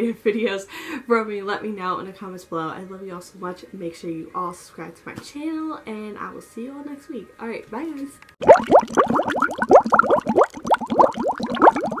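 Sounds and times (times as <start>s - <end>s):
bubbling blooping chirps: 8.4s - 12.0s.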